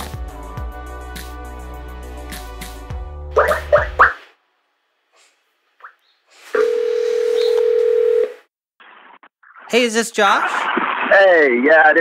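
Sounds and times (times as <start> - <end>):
telephone ringback tone: 6.6 - 8.4.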